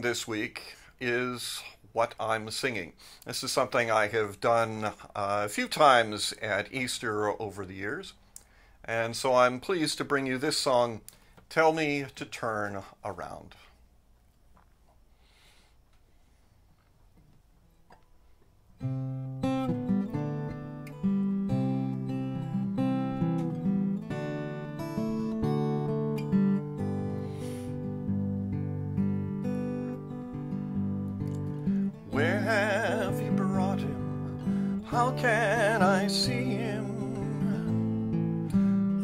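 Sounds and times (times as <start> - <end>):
acoustic guitar playing: 18.8 - 39.0
person singing with vibrato: 32.1 - 38.0.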